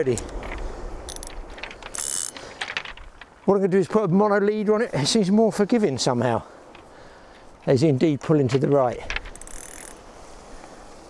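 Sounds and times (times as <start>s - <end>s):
fishing reel clicks and rattles: 1.0s - 3.0s, 9.1s - 10.0s.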